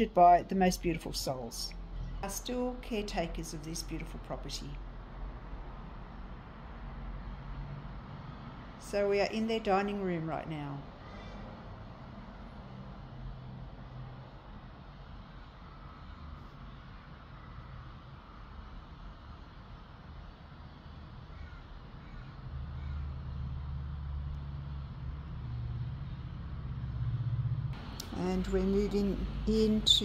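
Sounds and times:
road traffic rumble: 0.0s - 30.0s.

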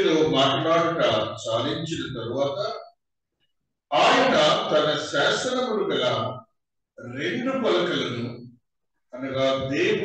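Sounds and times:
man talking into a microphone: 0.0s - 2.9s, 3.9s - 6.4s, 7.0s - 8.5s, 9.2s - 10.0s.

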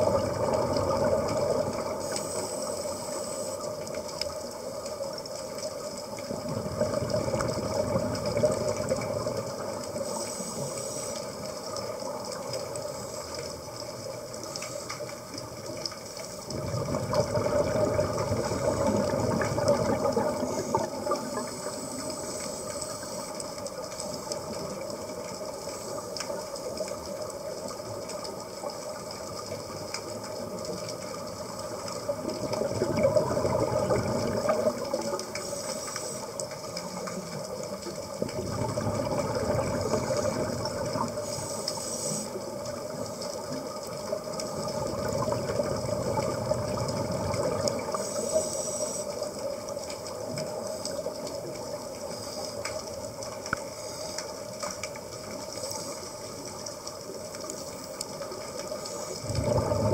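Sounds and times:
underwater hiss: 0.0s - 59.9s.

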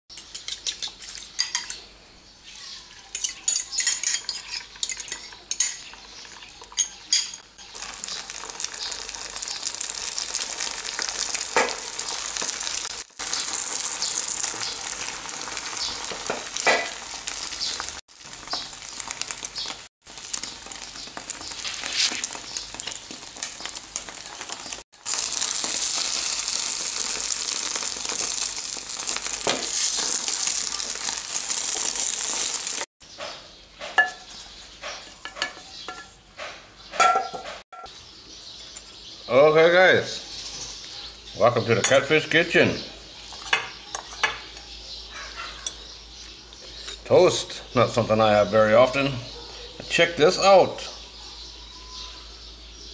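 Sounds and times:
spoon clinking on china bowl: 0.1s - 1.8s, 3.1s - 5.9s
egg sizzling in frying pan: 7.6s - 32.9s.

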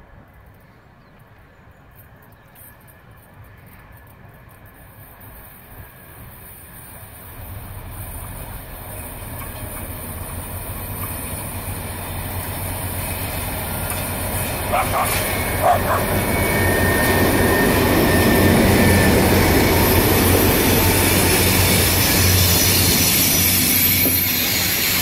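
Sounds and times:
locomotive engine hum: 0.0s - 25.0s
rail noise: 0.0s - 25.0s.

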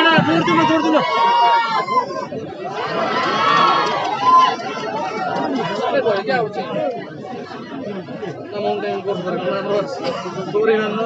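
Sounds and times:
crowd chattering and shouting: 0.0s - 11.0s.

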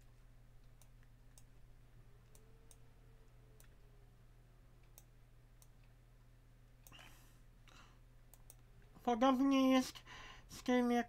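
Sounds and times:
low steady hum: 0.0s - 11.0s
computer mouse clicks: 0.6s - 1.6s, 2.2s - 2.9s, 3.6s - 3.8s, 4.8s - 6.0s, 6.8s - 7.1s, 8.3s - 8.7s.

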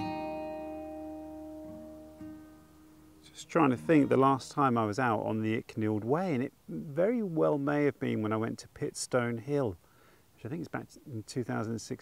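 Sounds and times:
guitar chord ringing: 0.0s - 4.8s.

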